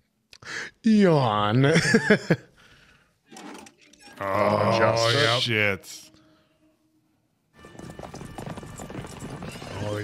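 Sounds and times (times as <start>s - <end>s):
horses galloping: 7.6s - 10.0s.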